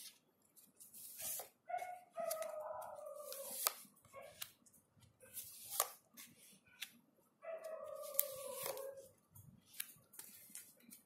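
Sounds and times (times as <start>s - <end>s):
cards clicking and snapping: 3.3s - 4.6s, 5.6s - 6.0s, 9.6s - 11.0s.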